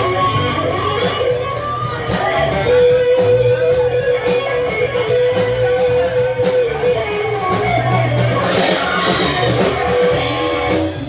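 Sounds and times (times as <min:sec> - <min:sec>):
guitar: 0:00.0 - 0:11.0
live funk-rock band: 0:00.0 - 0:11.0.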